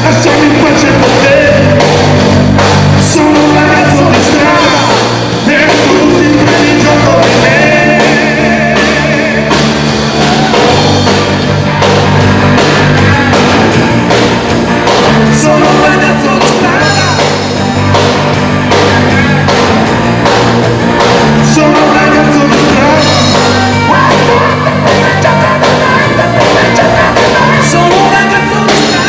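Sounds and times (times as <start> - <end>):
man singing: 0.0 - 10.9, 12.6 - 13.9, 15.0 - 17.8, 18.6 - 19.7, 21.2 - 29.0
live rock band playing: 0.0 - 29.0.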